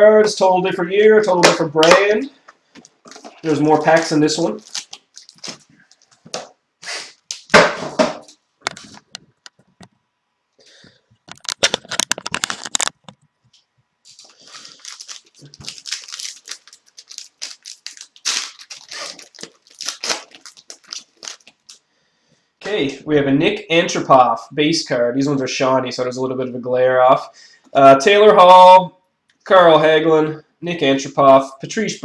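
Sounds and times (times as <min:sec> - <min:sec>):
packaging crinkling and tearing: 0:02.8 - 0:06.4, 0:11.3 - 0:13.2, 0:14.1 - 0:21.8.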